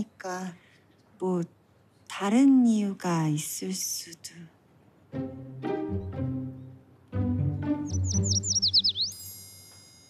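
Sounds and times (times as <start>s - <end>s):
soft low string music: 5.1s - 9.6s
twittering bird-like chirps: 7.8s - 9.5s
high shimmering chime: 9.2s - 10.0s.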